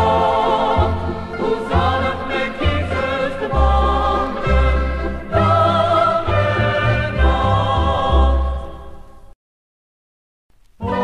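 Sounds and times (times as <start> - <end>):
instrumental accompaniment: 0.0 - 8.8
choir singing: 0.0 - 9.1, 10.8 - 11.0.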